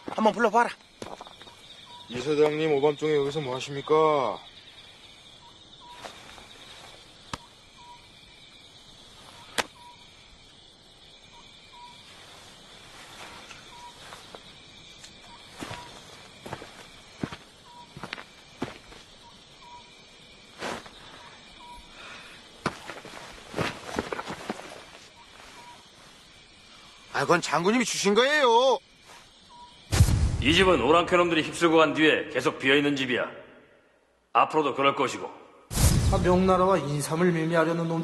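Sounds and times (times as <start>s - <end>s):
insects chirring: 0.0s - 38.0s
footsteps and rustles: 5.9s - 7.1s, 12.0s - 19.1s, 22.6s - 26.3s.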